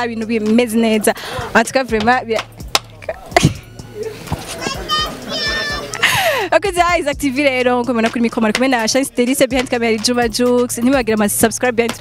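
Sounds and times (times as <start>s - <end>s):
excited high-pitched voices: 4.5s - 6.1s.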